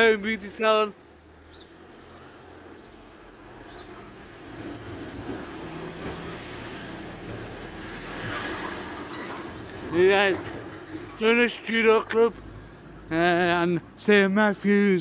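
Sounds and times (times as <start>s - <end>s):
road traffic hum: 0.0s - 15.0s.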